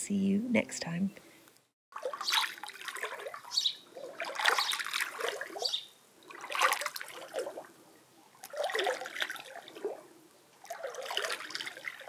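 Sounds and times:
water sloshing and splashing: 1.9 - 12.0.

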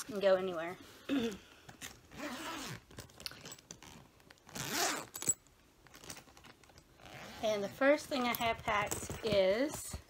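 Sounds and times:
bag zipper being pulled open: 2.1 - 5.4, 7.0 - 7.7.

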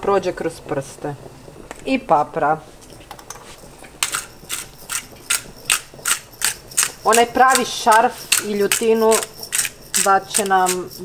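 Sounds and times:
pepper mill grinding: 4.0 - 11.0.

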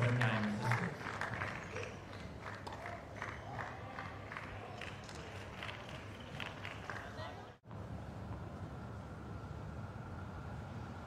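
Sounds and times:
crowd clapping: 0.0 - 7.5.

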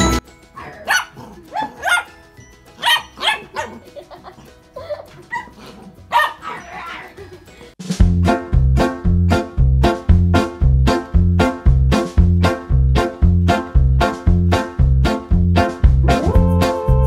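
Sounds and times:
music: 0.0 - 17.0
dog barking: 0.6 - 2.2, 2.8 - 3.9, 4.8 - 7.2.

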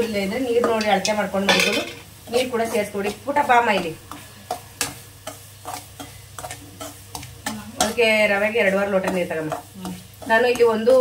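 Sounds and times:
spoon scraping through grains: 5.2 - 11.0.

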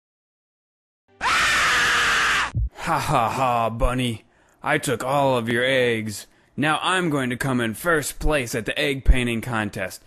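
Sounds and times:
loud distorted scream: 1.2 - 2.6.

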